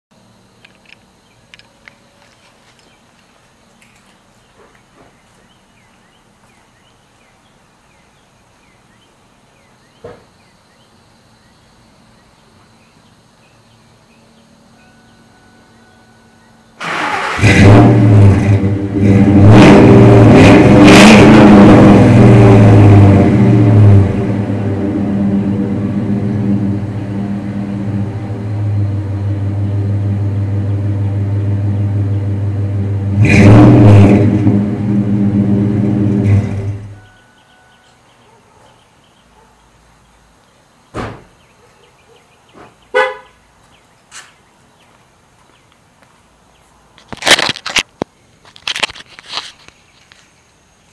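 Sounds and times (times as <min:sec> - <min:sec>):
engine running with deep exhaust: 0:11.4 - 0:38.0
vehicle horn toot: 0:36.3 - 0:38.0, 0:42.9 - 0:43.4
brief rustling: 0:47.0 - 0:50.4.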